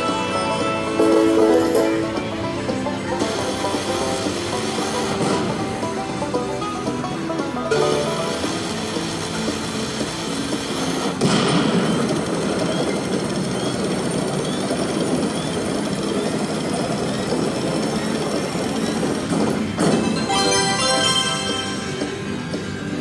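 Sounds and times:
game music: 0.0 - 14.2, 18.4 - 23.0
fizzing hiss: 7.7 - 11.2.

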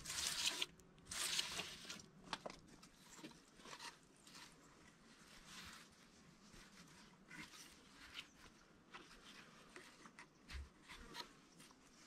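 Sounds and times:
felt strip rustling and scraping: 2.9 - 12.0.

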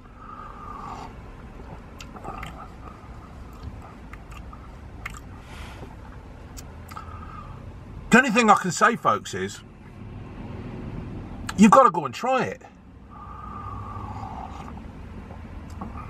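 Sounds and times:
low steady rumble: 0.0 - 16.0
person sipping hot drink: 0.4 - 5.8
mouth clicks: 1.6 - 5.3, 6.5 - 7.1.

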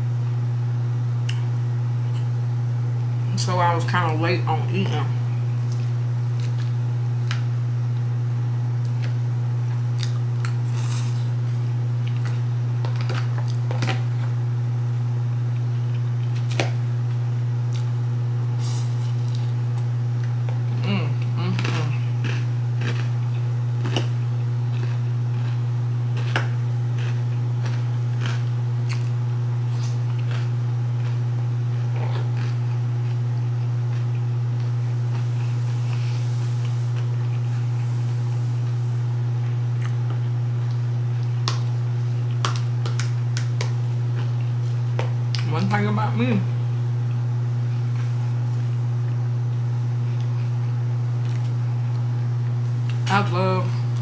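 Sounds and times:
appliance humming: 0.0 - 54.0.

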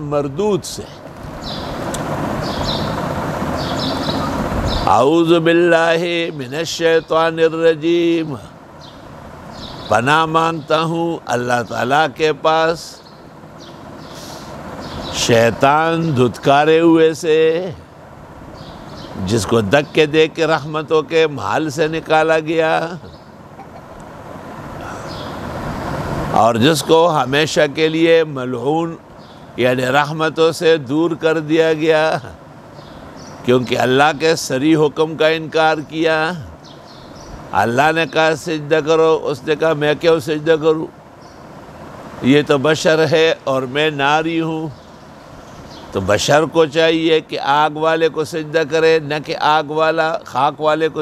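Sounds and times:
birds chirping: 0.0 - 51.0
passing vehicle rumble: 0.9 - 6.7, 17.8 - 28.2.

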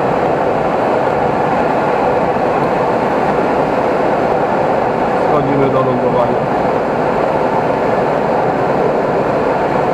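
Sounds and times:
airflow rushing over canopy: 0.0 - 9.9.

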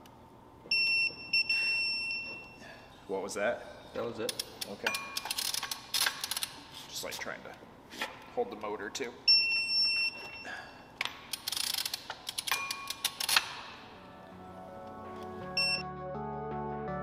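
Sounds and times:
wrench metallic clicks: 4.2 - 6.6, 11.0 - 13.7
wrench ratcheting rasp: 4.3 - 6.6, 11.3 - 13.6
background music: 13.7 - 17.0
electronic beeps: 15.6 - 15.8.

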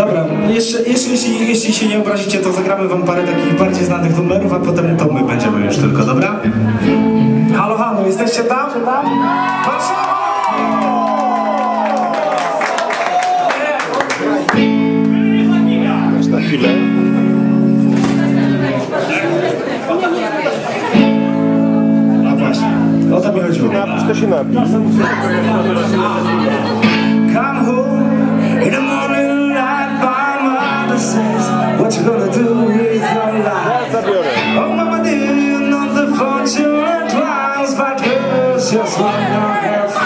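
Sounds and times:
man's voice at microphone: 0.0 - 10.0, 15.1 - 17.0, 22.2 - 26.7
ska band holding chords: 2.7 - 8.2, 14.5 - 19.0, 20.8 - 40.0
ska band playing: 3.0 - 8.3, 20.9 - 29.0
audience shouting and whooping: 9.0 - 14.4.

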